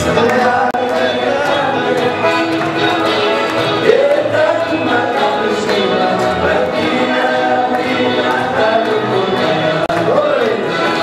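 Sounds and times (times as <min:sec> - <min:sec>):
group singing in chorus: 0:00.0 - 0:11.0
live instrumental accompaniment: 0:00.0 - 0:11.0.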